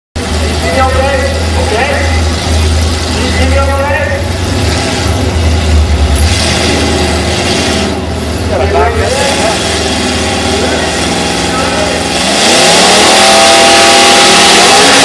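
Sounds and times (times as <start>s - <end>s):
deep car engine rumble: 0.2s - 15.0s
voices talking: 8.4s - 12.2s.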